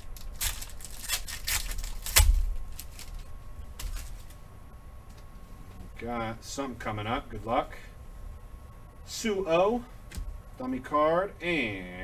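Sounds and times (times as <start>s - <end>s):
cards and foil pack rustling: 0.0s - 4.4s.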